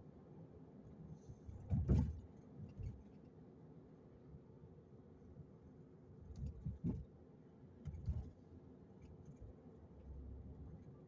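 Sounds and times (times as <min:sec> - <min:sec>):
low thump with rattle: 0:01.6 - 0:02.2.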